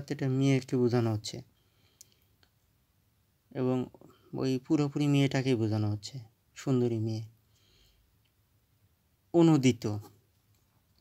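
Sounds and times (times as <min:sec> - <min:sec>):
person speaking: 0:00.0 - 0:01.6, 0:03.5 - 0:07.4, 0:09.3 - 0:10.3.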